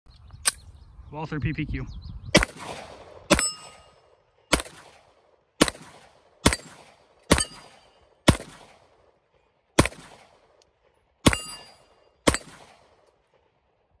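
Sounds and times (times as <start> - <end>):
pistol shots: 2.4 - 9.1, 9.8 - 10.6, 11.2 - 13.0
metallic ring of steel targets: 3.3 - 4.0, 7.3 - 8.1, 11.2 - 12.6.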